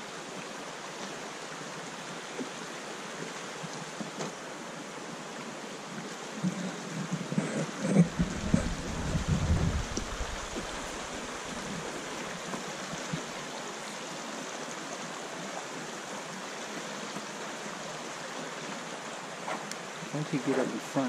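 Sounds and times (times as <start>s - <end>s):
creek water flowing: 0.0s - 21.0s
low rumbling thumps: 6.4s - 11.7s.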